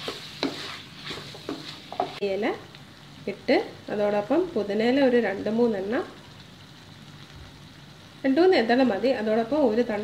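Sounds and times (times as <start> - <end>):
meat sizzling in a wok: 0.0 - 10.0.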